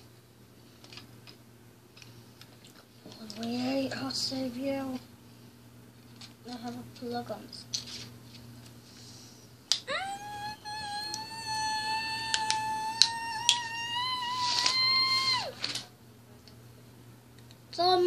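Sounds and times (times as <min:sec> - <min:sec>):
child squealing: 0:09.9 - 0:15.6
plastic toy bricks clicking: 0:12.2 - 0:13.7.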